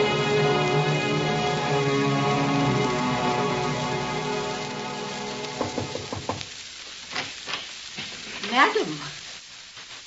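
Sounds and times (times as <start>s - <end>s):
crackling record surface noise: 0.0s - 10.0s.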